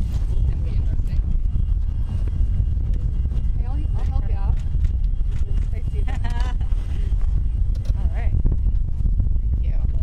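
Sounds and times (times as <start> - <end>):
aircraft machinery running: 0.0 - 10.0
wind buffeting microphone: 0.0 - 10.0.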